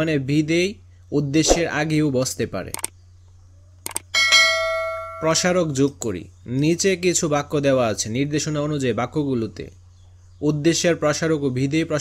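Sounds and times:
mouse clicks: 0:02.7 - 0:03.0, 0:03.8 - 0:04.1
bright bell chime: 0:04.2 - 0:05.8.

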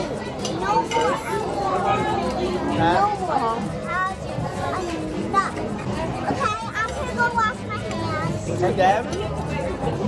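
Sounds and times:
children's voices: 0:00.0 - 0:08.5.

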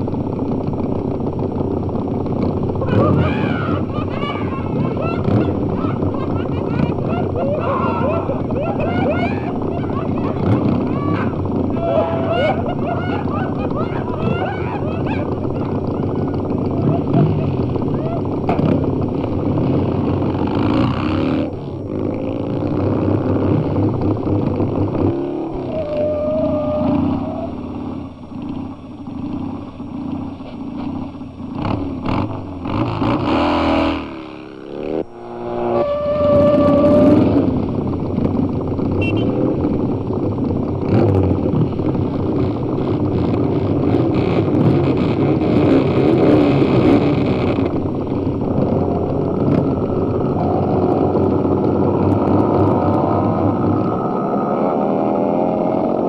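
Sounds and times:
motorcycle engines revving: 0:00.0 - 0:56.0.

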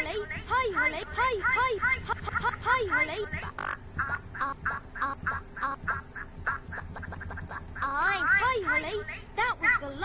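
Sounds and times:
looped quacking sound: 0:00.0 - 0:09.2
low steady hum: 0:00.0 - 0:10.0.

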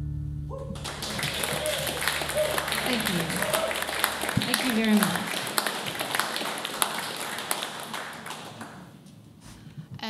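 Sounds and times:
audience clapping: 0:00.7 - 0:09.1.

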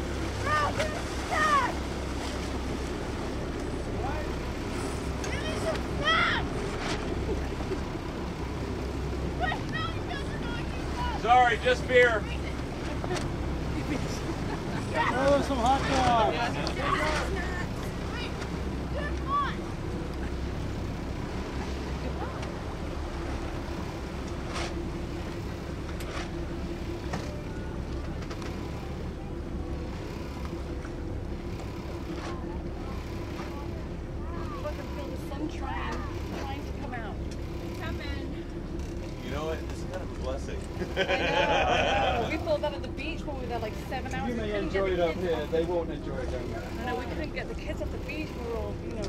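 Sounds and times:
motorboat engine droning: 0:00.0 - 0:49.0
voices: 0:00.0 - 0:49.0
water noise: 0:00.0 - 0:49.0
wind: 0:00.0 - 0:49.0.

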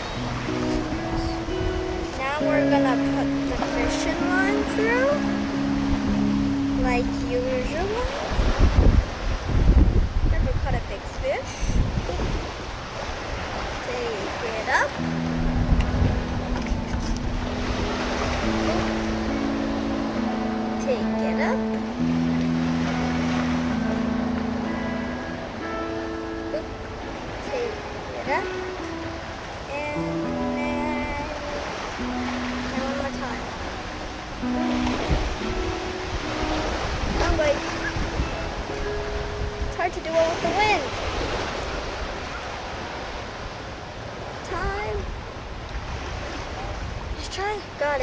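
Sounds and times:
low steady drone: 0:00.0 - 0:08.2
wind buffeting microphone: 0:00.0 - 0:25.8, 0:26.6 - 0:48.0
lapping lake water: 0:00.0 - 0:48.0.

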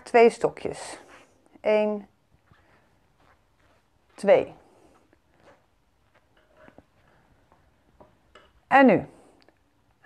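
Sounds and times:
yarn rustling: 0:00.0 - 0:08.3.

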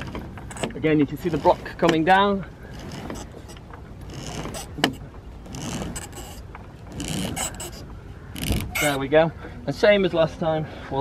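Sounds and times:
rope rubbing through pulleys: 0:00.0 - 0:09.2.

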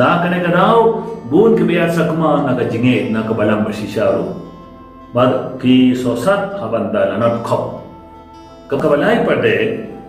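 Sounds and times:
soft guitar music: 0:00.0 - 0:10.0.

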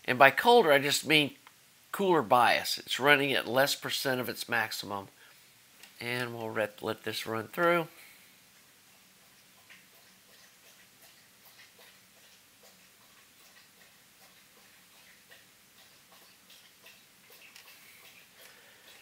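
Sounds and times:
faint steady hum: 0:00.0 - 0:19.0
pet lapping water: 0:08.9 - 0:19.0.

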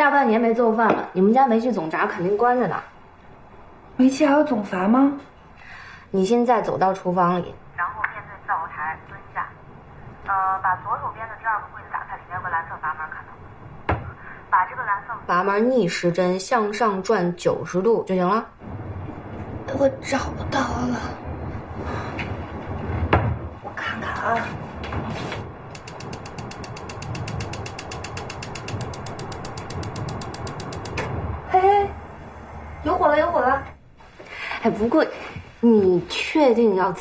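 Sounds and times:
gas igniter clicking rapidly: 0:25.7 - 0:31.1.

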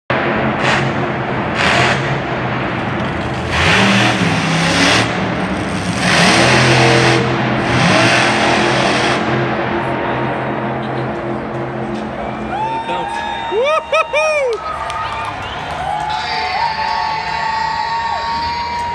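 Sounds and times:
monster truck engine revving: 0:00.1 - 0:12.5.

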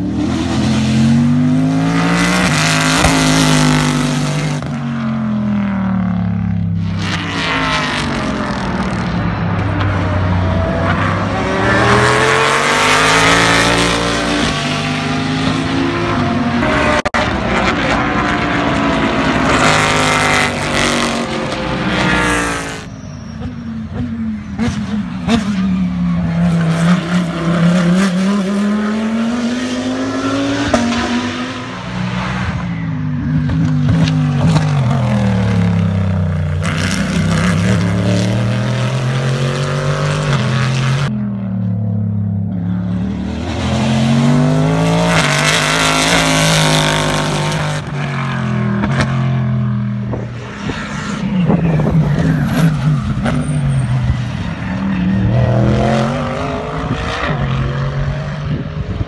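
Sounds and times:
race cars passing: 0:00.0 - 0:59.0.

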